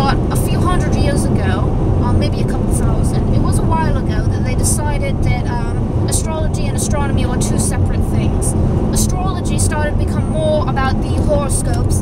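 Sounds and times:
road and engine noise in car: 0.0s - 12.0s
woman talking: 0.0s - 12.0s.

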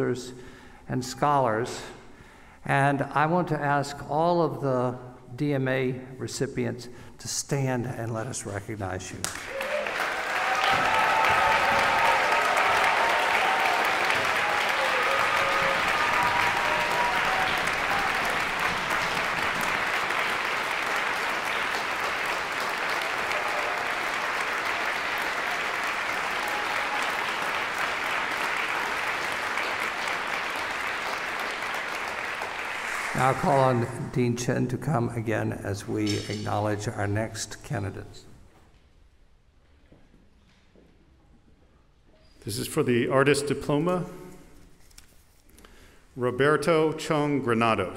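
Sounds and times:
audience applauding: 9.2s - 33.9s
cheers and whoops: 9.4s - 19.2s, 22.8s - 27.7s.

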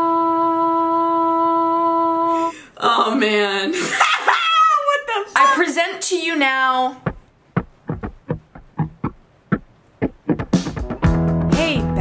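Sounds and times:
woman singing long note: 0.0s - 2.5s
laughter: 3.8s - 4.6s
lively voice sounds with sliding pitch: 4.8s - 7.0s, 11.5s - 12.0s.

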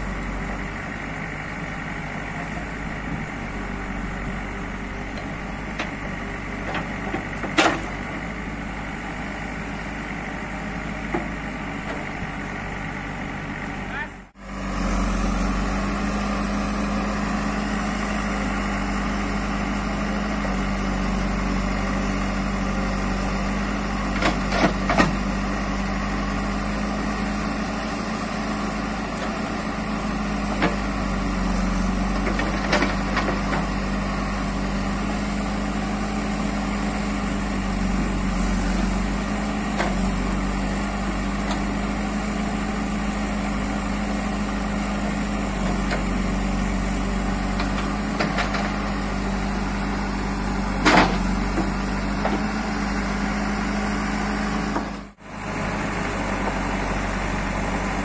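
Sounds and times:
backhoe diesel engine running: 0.0s - 58.0s.

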